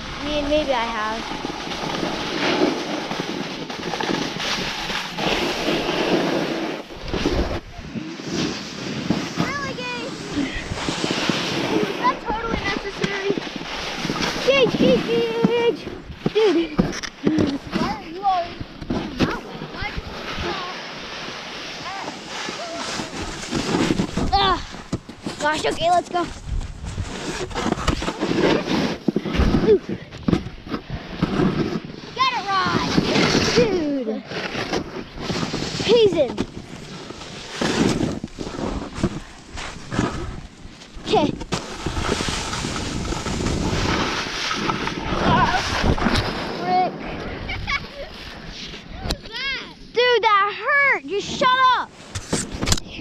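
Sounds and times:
wind noise on microphone: 0.0 - 20.7, 21.8 - 49.6
snowboard scraping over snow: 0.0 - 53.0.

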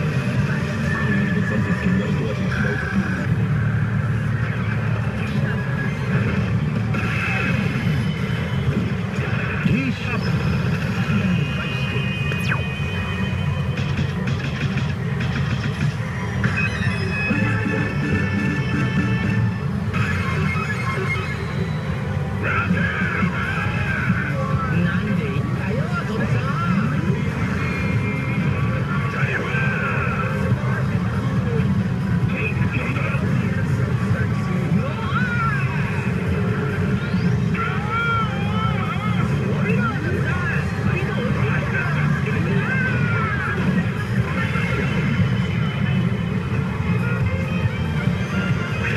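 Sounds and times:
dense hall noise: 0.0 - 48.9
pachinko machine music and effects: 0.0 - 48.9
voice clips: 9.3 - 10.3.

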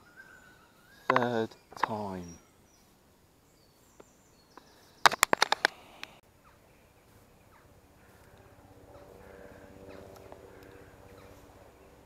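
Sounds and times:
rapid sharp clicks: 5.0 - 6.2.

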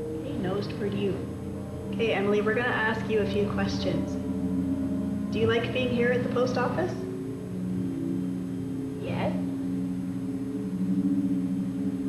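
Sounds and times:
low ambient music drone: 0.0 - 12.0.

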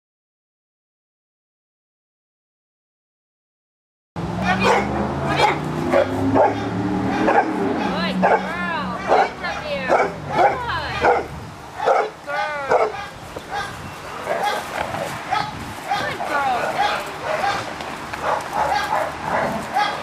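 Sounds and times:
dog barking: 4.4 - 20.0.

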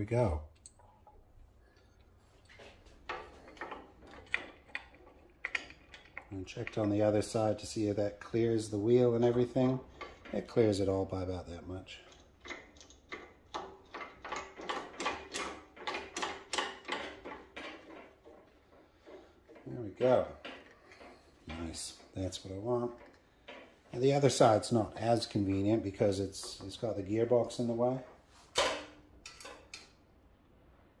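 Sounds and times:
metal clicks and clatters: 2.0 - 30.0.

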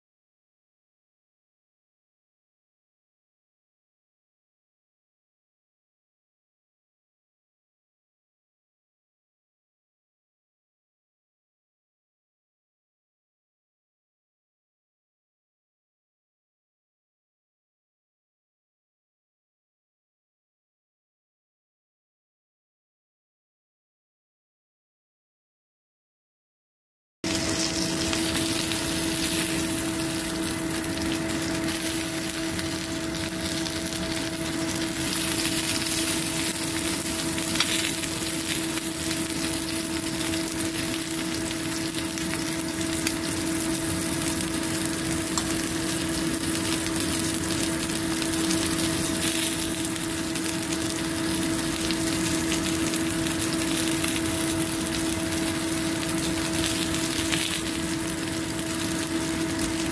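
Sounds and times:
meat sizzling on a grill: 27.3 - 59.9
steady low hum: 27.3 - 59.9.

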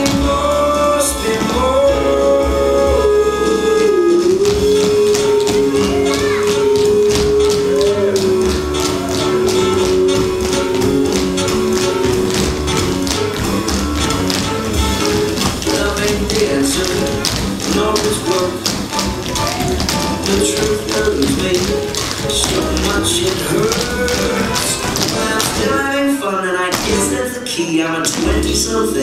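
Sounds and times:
tap shoes striking stage floor: 0.0 - 26.0, 26.7 - 27.1, 28.0 - 29.0
jazz-pop song: 0.0 - 29.0.

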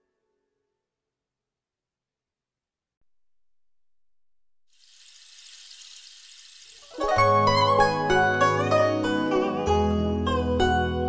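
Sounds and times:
faint steady hiss: 4.7 - 7.2.

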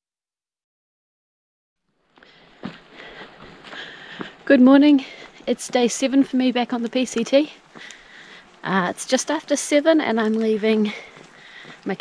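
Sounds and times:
footsteps on dirt trail: 2.0 - 12.0
backpack and clothing rustling: 2.1 - 12.0.

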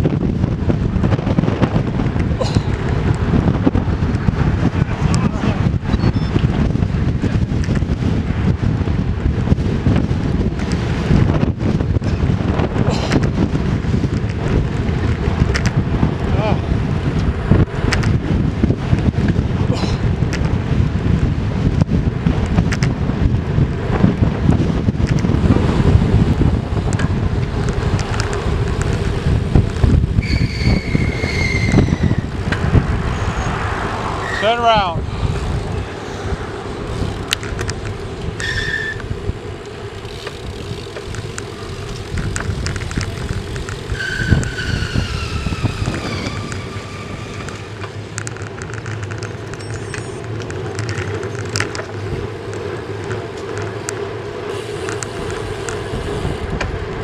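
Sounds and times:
road and tyre noise: 0.0 - 57.0
traffic going by: 0.0 - 57.0
wind rushing over microphone: 0.0 - 57.0
high whistling tones: 30.2 - 32.3, 38.4 - 39.1, 43.9 - 47.4.

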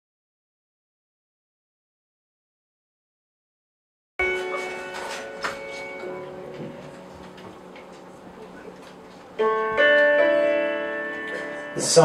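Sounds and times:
piano chords ringing: 4.2 - 12.0.

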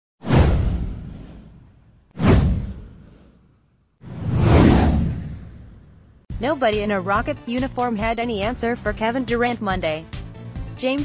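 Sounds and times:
whoosh with deep low boom: 0.2 - 6.3.

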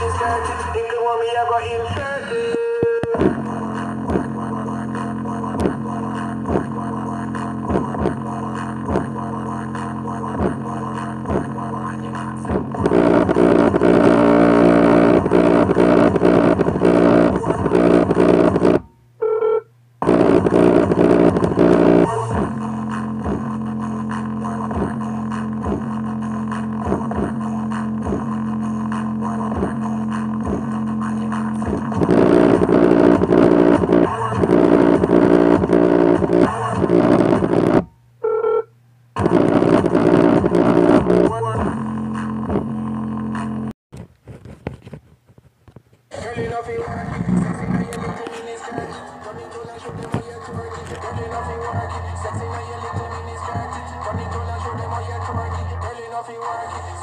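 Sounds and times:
bass-heavy music from small speaker: 0.0 - 19.2, 19.8 - 38.2, 39.2 - 43.7, 46.1 - 57.0.

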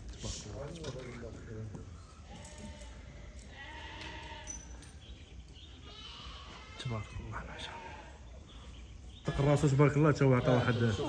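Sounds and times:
low background noise: 0.0 - 11.0
sheep bleating: 2.3 - 4.6, 5.8 - 8.2, 9.2 - 11.0.

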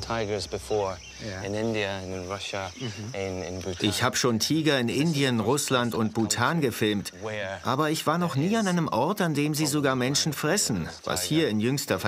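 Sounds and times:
insects chirring: 0.0 - 12.0
men talking: 0.0 - 12.0.

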